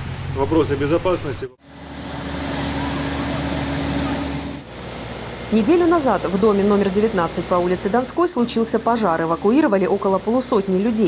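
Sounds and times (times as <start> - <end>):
fire engine running: 1.6 - 11.0.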